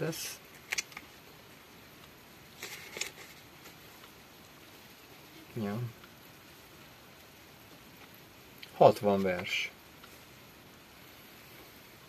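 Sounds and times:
quiet room noise: 0.0 - 12.0
book pages rustling: 0.5 - 1.1, 2.5 - 4.2, 9.1 - 10.3.

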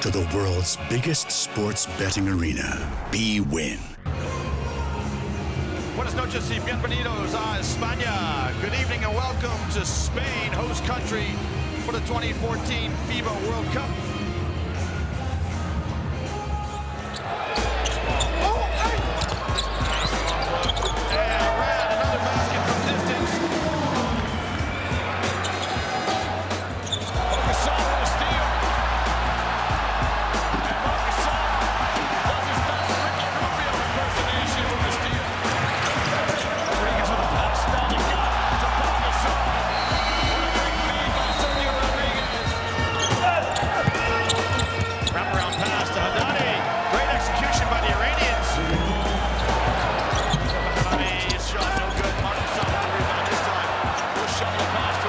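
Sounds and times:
murmur of large crowd: 0.0 - 55.0
background music with low bass: 1.8 - 55.0
shoe squeaks: 17.1 - 21.4, 26.8 - 27.3, 41.1 - 46.4, 50.0 - 52.2.

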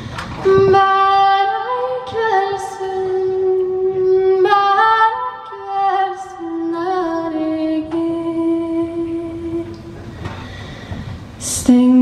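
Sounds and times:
woman singing through pa: 0.4 - 10.0, 11.4 - 12.0.

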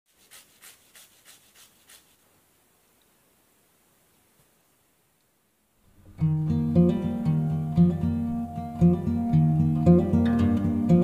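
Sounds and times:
ginger rasping on metal grater: 0.1 - 2.2.

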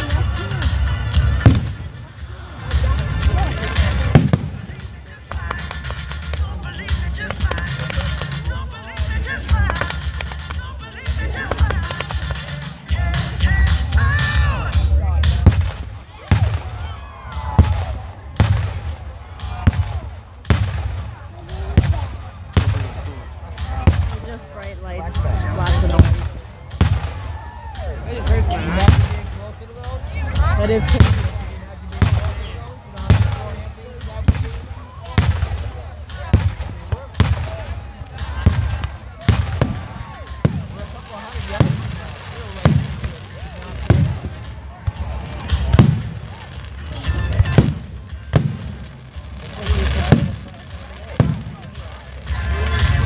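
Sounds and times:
crowd voices: 0.0 - 53.0
fireworks bursting: 0.0 - 53.0
music: 0.0 - 53.0.

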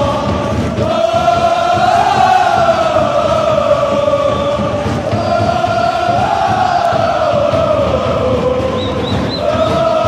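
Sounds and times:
crowd chanting in unison: 0.0 - 10.0.

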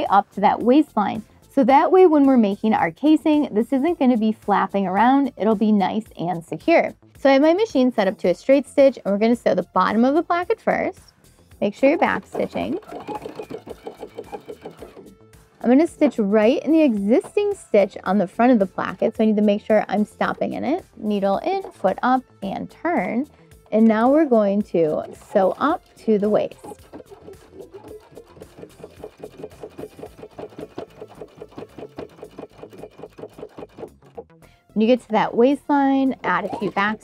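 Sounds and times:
electric sewing machine stitching: 11.8 - 17.5, 23.0 - 34.3, 36.0 - 37.0.

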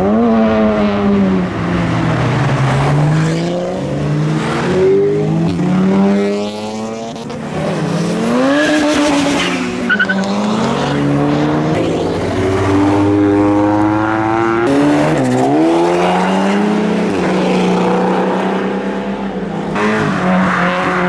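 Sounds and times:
car engines accelerating: 0.0 - 21.0.

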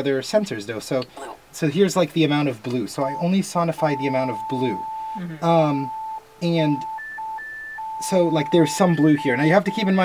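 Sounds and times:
pure electronic tone: 3.1 - 10.0.

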